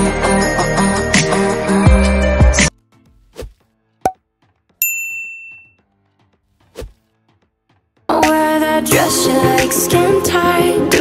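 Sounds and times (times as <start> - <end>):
bright bell-like ding: 4.8 - 5.8.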